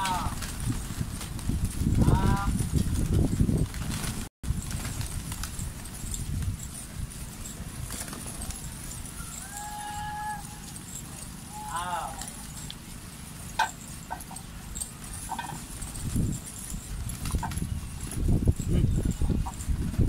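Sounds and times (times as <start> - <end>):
pigeons flapping wings: 0.0 - 20.0
distant voices calling: 4.6 - 20.0.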